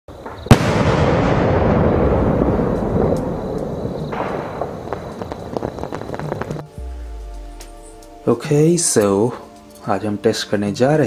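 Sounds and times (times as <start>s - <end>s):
firework pops: 0.2s - 6.7s
firework crackling rush: 0.3s - 6.8s.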